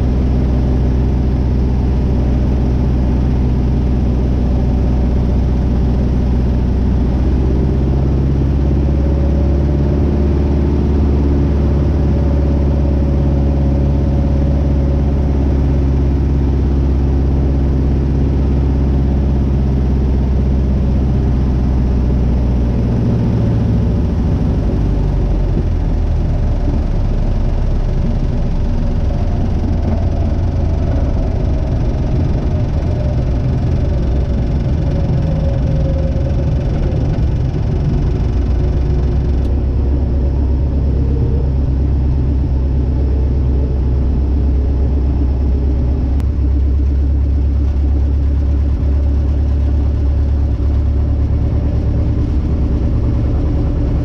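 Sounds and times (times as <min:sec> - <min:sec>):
aircraft engine and propeller: 0:00.0 - 0:54.0.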